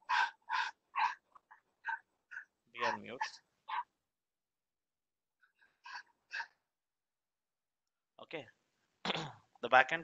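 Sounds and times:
dog barking: 0.0 - 3.9, 5.8 - 6.6.

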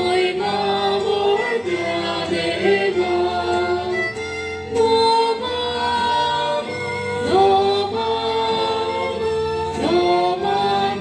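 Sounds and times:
voices singing a hymn: 0.0 - 11.0.

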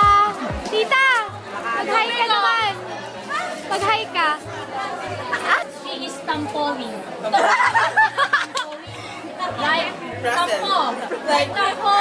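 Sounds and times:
background music with bass: 0.0 - 5.5
people chattering: 0.0 - 12.0.

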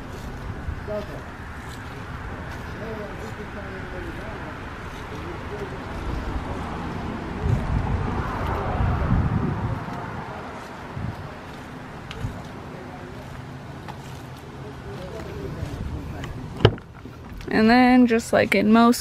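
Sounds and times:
wind buffeting microphone: 0.0 - 13.9, 14.6 - 18.7
microphone handling knocks: 16.5 - 17.4.

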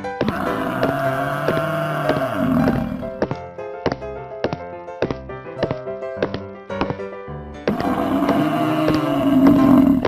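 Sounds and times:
plucked background music: 0.0 - 10.0
long low animal call: 0.2 - 3.2, 7.7 - 10.0.

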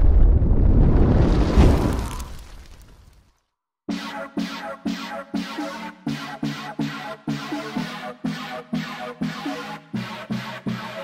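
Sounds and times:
rumbling fireball explosion: 0.0 - 3.1.

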